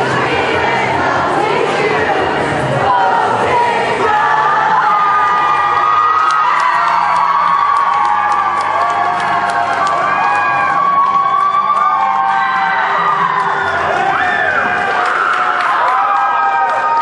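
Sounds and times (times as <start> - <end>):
crowd singing and cheering: 0.0 - 17.0
music: 0.0 - 17.0.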